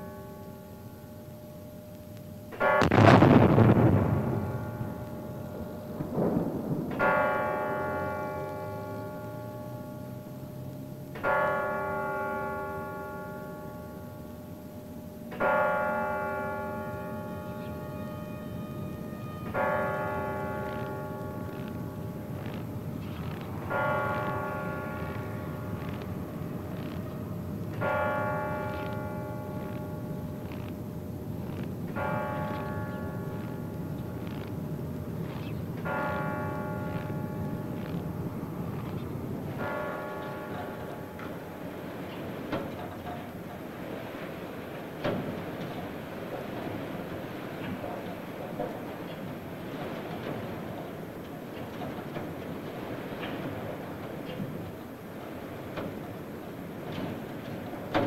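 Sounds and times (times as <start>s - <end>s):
church bell tolling: 0.0s - 58.0s.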